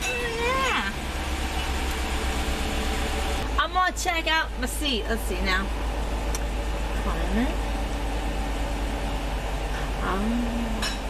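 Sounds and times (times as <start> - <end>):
car engine idling hum: 0.0 - 11.0.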